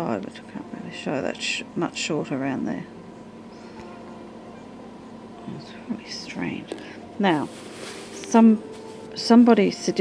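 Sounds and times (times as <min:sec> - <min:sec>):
faint room tone hum: 0:00.0 - 0:10.0.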